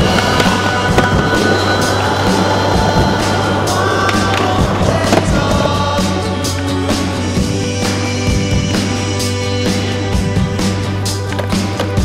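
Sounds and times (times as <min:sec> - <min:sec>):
skateboard clacking: 0:00.0 - 0:07.2, 0:10.6 - 0:12.0
skateboard wheels rolling on asphalt: 0:00.0 - 0:08.0, 0:10.5 - 0:12.0
music track: 0:00.0 - 0:12.0.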